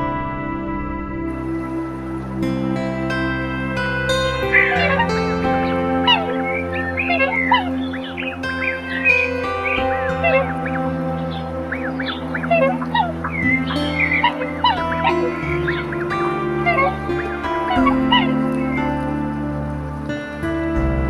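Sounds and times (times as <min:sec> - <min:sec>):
piano music: 0:00.0 - 0:21.0
waterfowl calling: 0:03.7 - 0:20.1.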